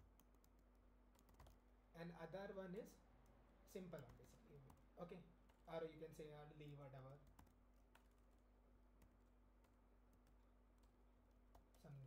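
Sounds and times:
faint keyboard clicks: 0.0s - 1.6s, 3.2s - 5.7s, 7.0s - 8.4s, 9.0s - 12.0s.

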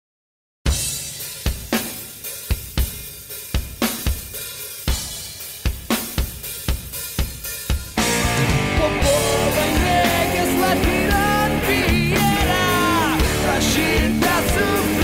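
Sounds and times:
rock drum kit beat: 0.7s - 15.0s
band sustained instruments: 8.0s - 15.0s.

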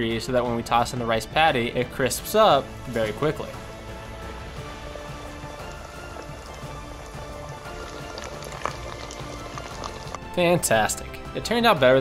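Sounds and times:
background music: 0.0s - 12.0s
food deep-frying in oil: 2.7s - 10.4s.

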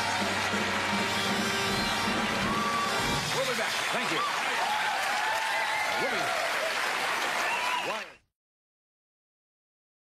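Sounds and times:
audience applauding: 0.0s - 8.2s
cheers and whoops: 0.0s - 8.2s.

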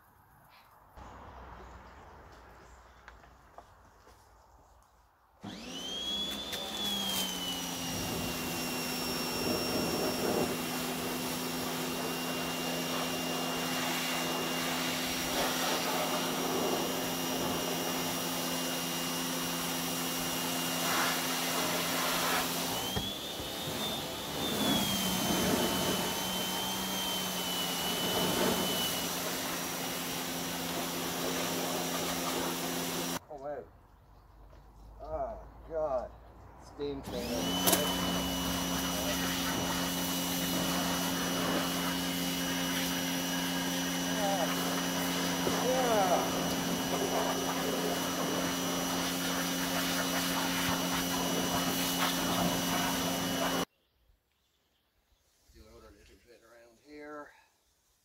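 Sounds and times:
pressure washer whining: 5.4s - 33.2s, 36.8s - 53.7s
water jet hissing: 6.5s - 33.2s, 37.0s - 53.7s.

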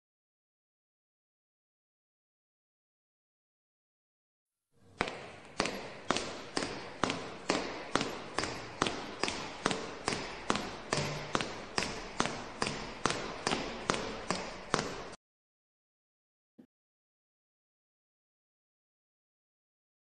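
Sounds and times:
sharp rhythmic taps: 5.0s - 15.2s.

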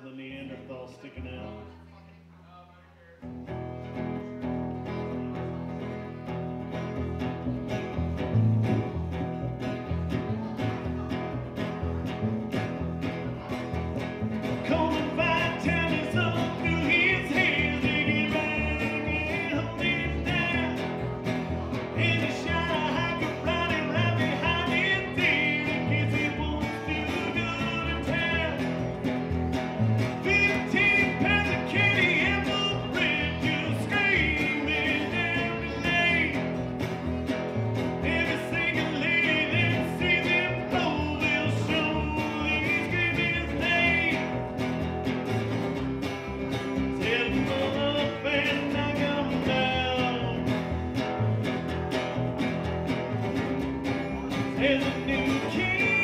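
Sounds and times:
man singing: 0.0s - 1.8s, 14.3s - 45.0s, 46.6s - 51.4s, 54.1s - 56.0s
acoustic guitar strumming: 3.2s - 56.0s
plucked double bass: 3.3s - 56.0s.

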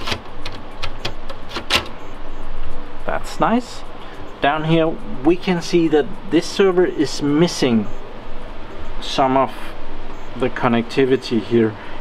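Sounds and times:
rubbing and handling noise: 0.0s - 2.0s.

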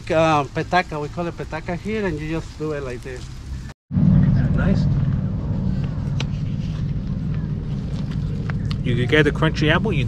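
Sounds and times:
low rumbling noise: 0.0s - 10.0s.

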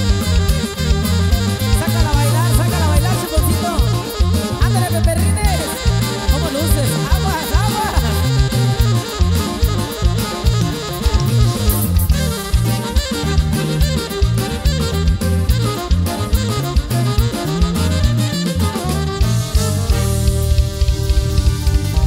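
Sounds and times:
drum kit: 0.0s - 22.0s
saxophone lead: 0.0s - 22.0s
stepping bass line: 0.0s - 22.0s.

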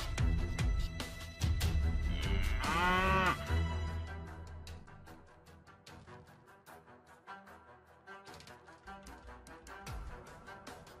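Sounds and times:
background music: 0.0s - 11.0s
large animal call: 2.1s - 3.4s.

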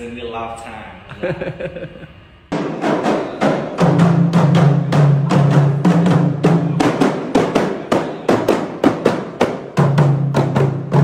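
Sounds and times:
frame drums beaten in rhythm: 2.5s - 11.0s.

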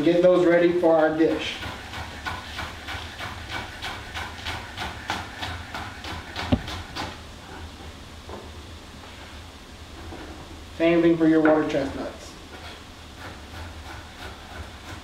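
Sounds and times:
knife chopping on wooden board: 1.3s - 7.2s, 12.6s - 15.0s.

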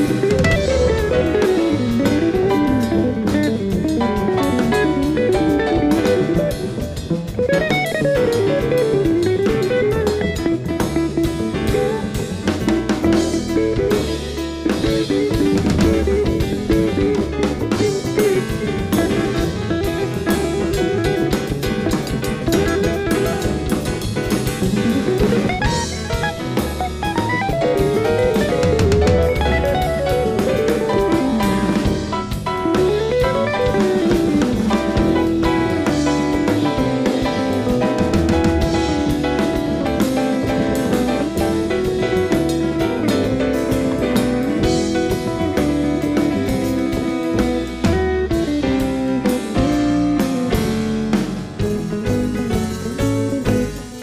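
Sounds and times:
drum kit: 0.0s - 54.0s
electric guitar runs: 0.0s - 54.0s
upright double bass: 0.0s - 54.0s.

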